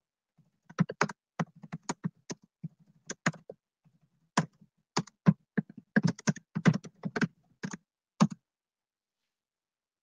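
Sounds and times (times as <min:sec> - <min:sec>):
typing on computer keyboard: 0:00.6 - 0:03.6, 0:04.4 - 0:08.4.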